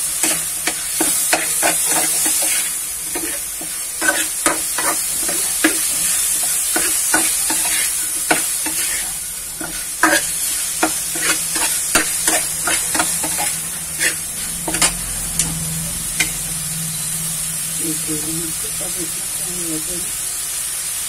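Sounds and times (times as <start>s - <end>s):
metal spatula scraping a pan: 0.0s - 17.4s
food sizzling in a frying pan: 0.0s - 21.0s.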